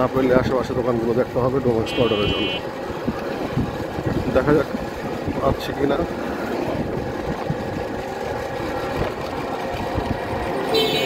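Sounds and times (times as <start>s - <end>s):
road noise and traffic rumble: 0.0s - 11.0s.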